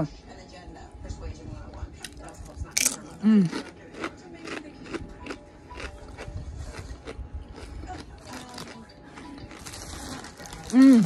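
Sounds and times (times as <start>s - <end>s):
chips crunching while chewed: 2.0s - 11.0s.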